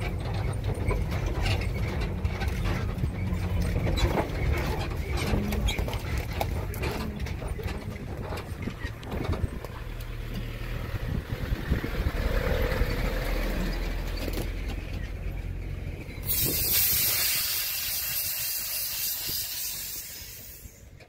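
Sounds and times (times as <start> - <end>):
vehicle engine rumble: 0.0 - 21.0
loud steady hiss: 16.2 - 20.9.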